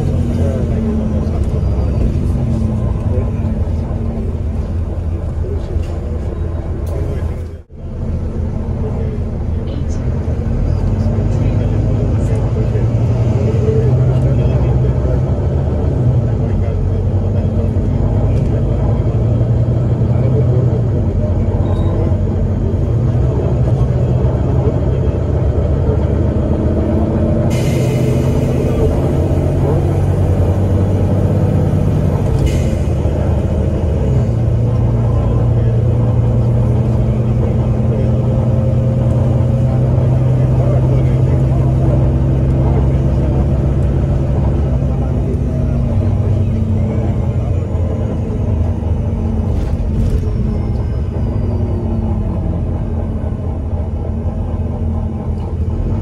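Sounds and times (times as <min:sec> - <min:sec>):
bus diesel engine droning: 0:00.0 - 0:56.0.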